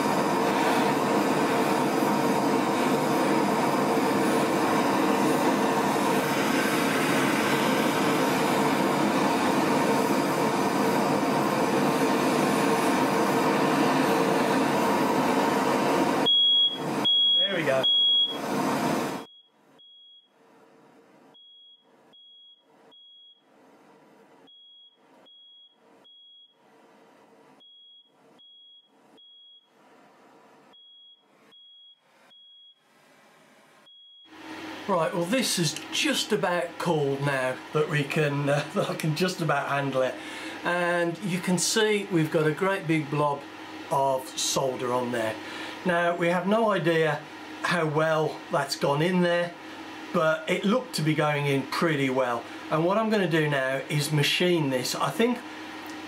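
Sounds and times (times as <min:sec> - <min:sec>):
gas torch flame rushing: 0:00.0 - 0:19.3, 0:34.3 - 0:56.0
fan running: 0:00.0 - 0:26.4, 0:27.2 - 0:56.0
smoke alarm beeping: 0:16.2 - 0:18.4, 0:19.1 - 0:20.4, 0:21.3 - 0:23.5, 0:24.4 - 0:26.6, 0:27.6 - 0:29.7, 0:30.7 - 0:32.8, 0:33.8 - 0:34.4.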